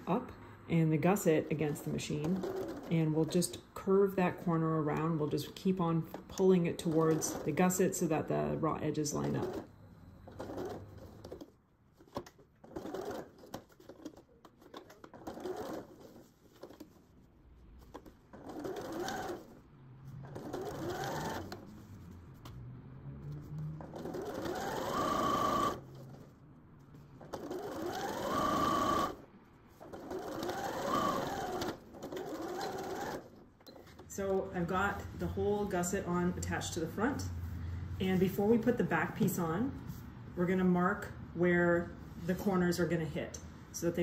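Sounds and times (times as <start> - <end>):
sewing machine stitching: 1.5 - 3.6, 6.3 - 8.2, 9.0 - 17.0, 17.8 - 22.0, 23.3 - 26.3, 27.2 - 29.2, 29.8 - 34.5.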